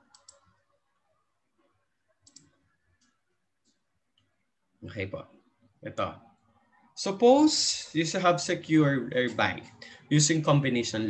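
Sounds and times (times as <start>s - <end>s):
computer mouse clicks: 0.0s - 0.6s, 2.2s - 4.3s.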